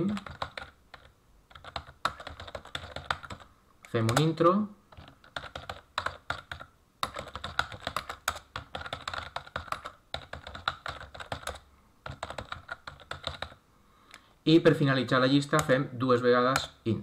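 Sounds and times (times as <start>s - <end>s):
computer keyboard typing: 0.0s - 13.6s, 15.4s - 15.8s, 16.5s - 16.8s.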